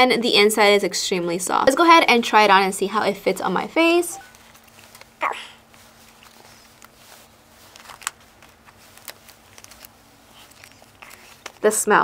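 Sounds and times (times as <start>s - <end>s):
faint steady hum: 0.0s - 12.0s
handling of a face mask: 4.2s - 11.7s
short breathy vocal sound: 5.2s - 5.6s.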